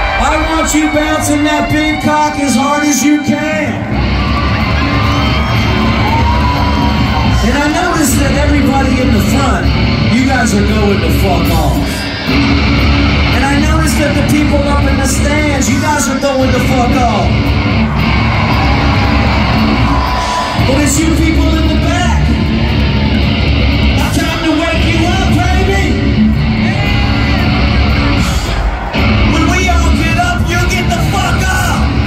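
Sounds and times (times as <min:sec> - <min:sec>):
live rock band playing loudly: 0:00.0 - 0:32.0.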